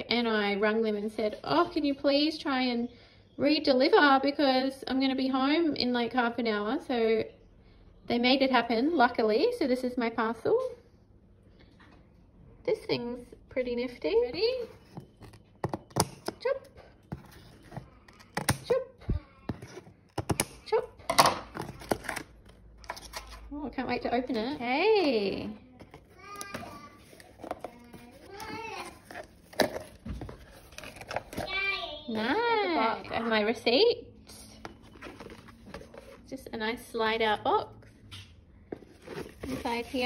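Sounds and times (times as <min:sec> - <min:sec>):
paper and cardboard rustling: 0:16.9 - 0:18.8, 0:19.5 - 0:20.4, 0:24.2 - 0:31.6, 0:34.6 - 0:36.4, 0:38.7 - 0:40.0.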